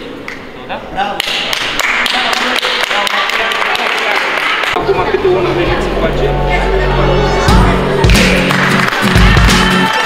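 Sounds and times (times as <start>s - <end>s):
audience applause in a hall: 1.2s - 4.8s, 8.0s - 10.0s.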